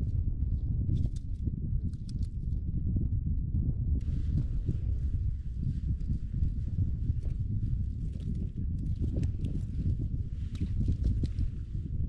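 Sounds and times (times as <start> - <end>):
wind buffeting microphone: 0.0 - 12.0
faint small clicks: 1.9 - 2.3, 10.4 - 11.4.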